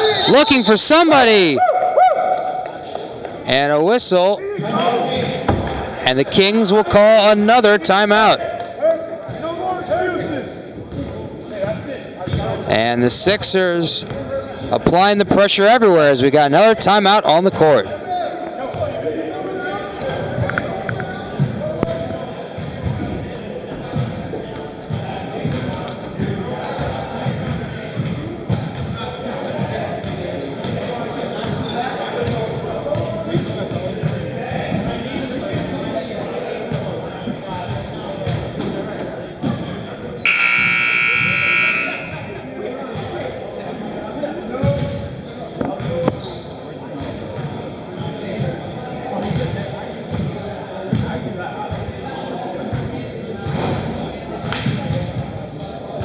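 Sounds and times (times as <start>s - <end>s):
players and spectators talking: 0.0s - 56.0s
scoreboard buzzer: 40.3s - 42.3s.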